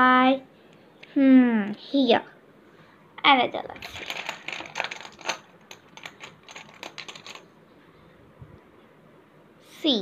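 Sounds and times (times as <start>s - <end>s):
plastic tiles clicking together: 3.8s - 7.4s.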